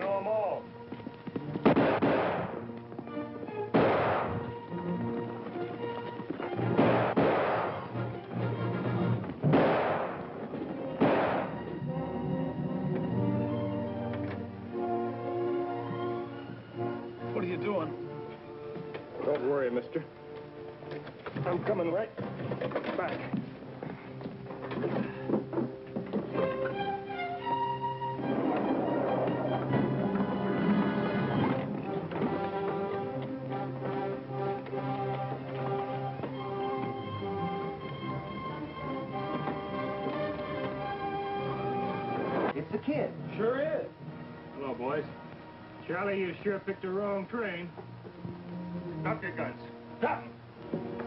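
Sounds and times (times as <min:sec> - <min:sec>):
orchestral music with held chords: 0:00.0 - 0:51.0.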